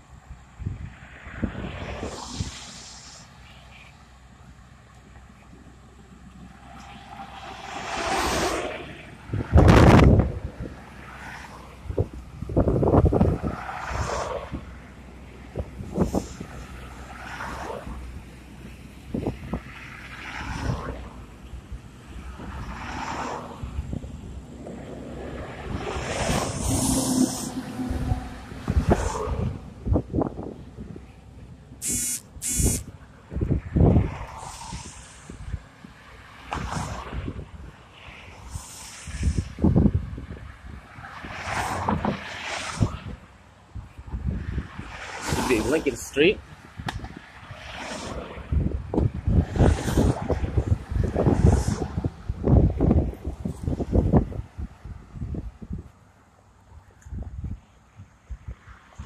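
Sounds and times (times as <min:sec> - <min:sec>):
cars passing by: 0:00.0 - 0:59.0.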